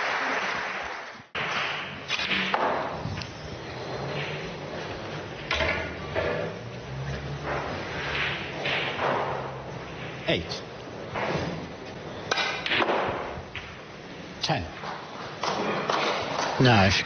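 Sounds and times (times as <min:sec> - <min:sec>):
snooker balls clicking: 0:01.4 - 0:10.3, 0:11.0 - 0:13.9
cue striking cue ball: 0:12.3 - 0:13.8.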